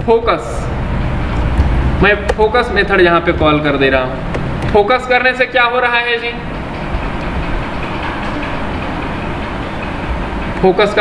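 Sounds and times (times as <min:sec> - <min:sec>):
steady rushing noise: 0:00.0 - 0:11.0
low rumble: 0:00.6 - 0:05.7.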